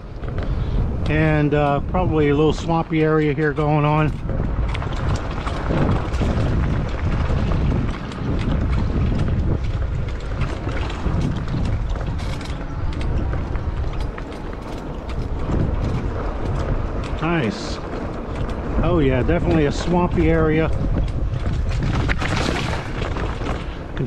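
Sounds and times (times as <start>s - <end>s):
bike clicks and rattles: 0.0s - 24.0s
tyres rumbling on dirt trail: 0.0s - 24.0s.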